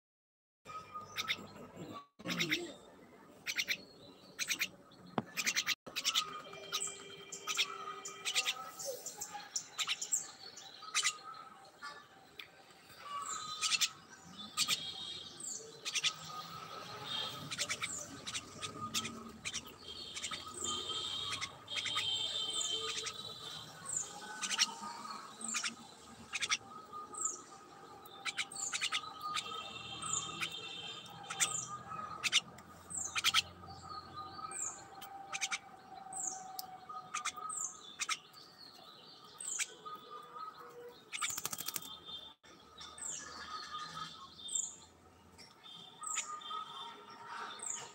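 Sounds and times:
birds chirping: 0.7 - 47.9.

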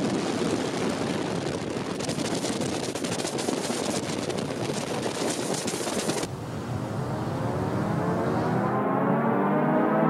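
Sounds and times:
rush of noise: 0.0 - 10.0
engine running under throttle: 6.0 - 10.0.

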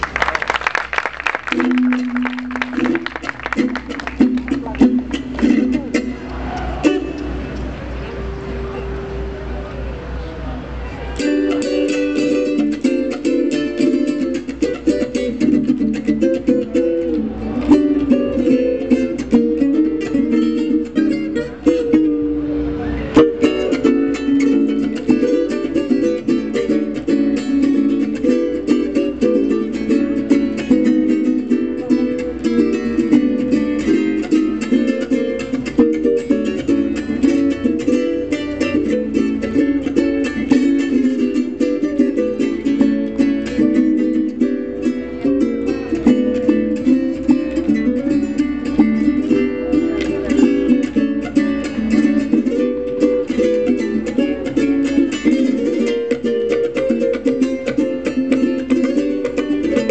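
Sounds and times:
strummed cuatros: 0.0 - 59.9
plucked melody notes: 1.5 - 59.9.

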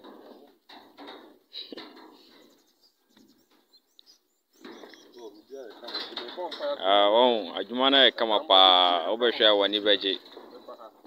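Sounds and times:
faint outdoor background: 0.0 - 11.0
high bird chirps: 2.2 - 5.7.

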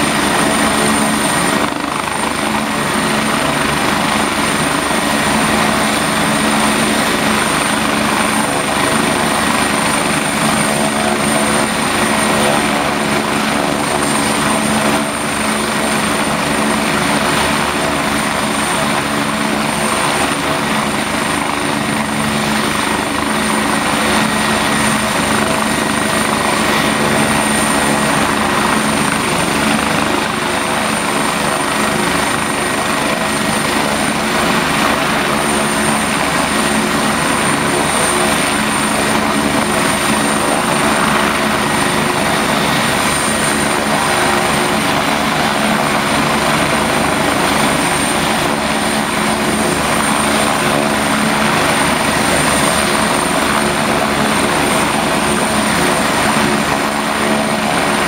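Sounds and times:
helicopter rotor beating: 0.0 - 58.0.

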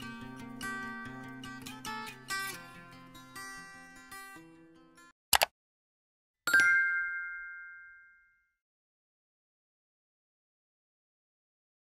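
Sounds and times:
bell ding: 6.5 - 8.6.

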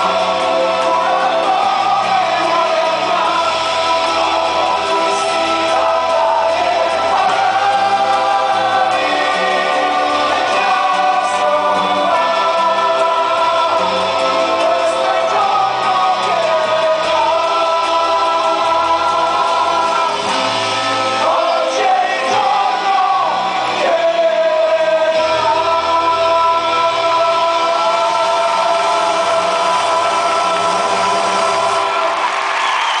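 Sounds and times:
band playing: 0.0 - 33.0
singers singing together: 0.0 - 33.0.

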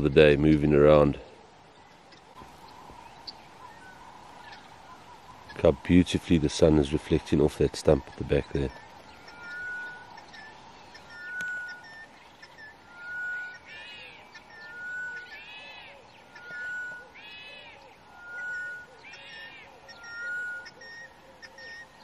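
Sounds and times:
bird call rising and falling: 1.8 - 22.0.

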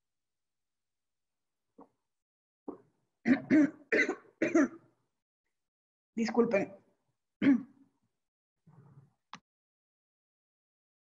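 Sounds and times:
woman coughing: 3.3 - 4.8, 7.4 - 7.8.

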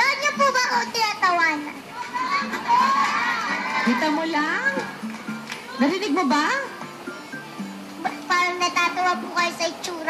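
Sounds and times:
studio audience cheering and shouting: 1.9 - 4.6.

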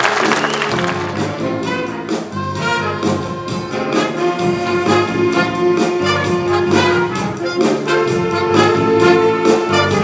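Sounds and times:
wind band playing upbeat music: 0.0 - 10.0.

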